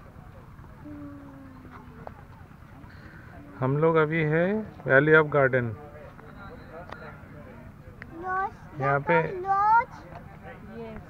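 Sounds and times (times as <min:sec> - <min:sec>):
faint voice: 0:00.8 - 0:02.4.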